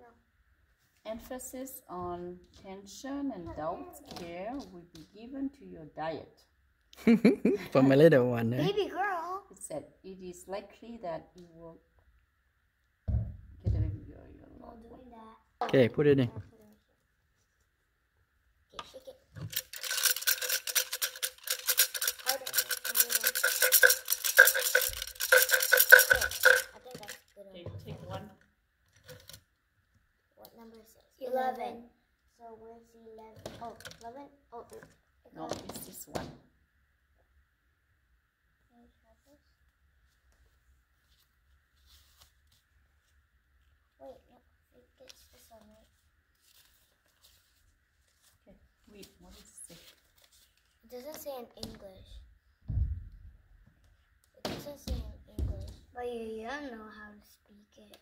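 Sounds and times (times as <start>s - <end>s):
wooden sticks rattling in cup: 19.4s - 27.4s
paper slip rustling: 45.2s - 48.4s.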